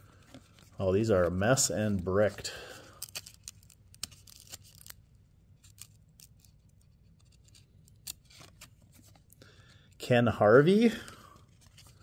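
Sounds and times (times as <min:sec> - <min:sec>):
cardboard cards rustling and clicking: 0:00.0 - 0:05.0, 0:05.6 - 0:09.4, 0:11.0 - 0:12.0.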